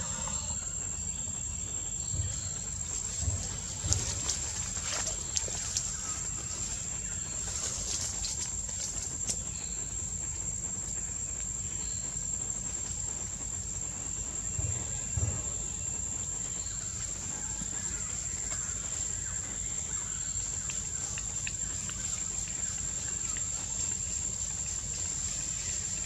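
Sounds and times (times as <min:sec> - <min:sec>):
constant low rumble: 0:00.0 - 0:26.0
high-pitched insect drone: 0:00.0 - 0:26.0
soft low thumps: 0:01.1 - 0:26.0.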